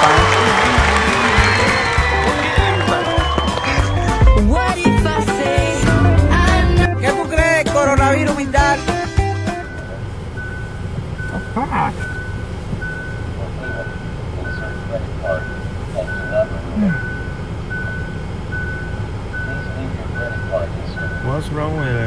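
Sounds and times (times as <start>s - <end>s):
low vehicle rumble: 0.0s - 22.0s
high electronic beeps: 9.7s - 22.0s.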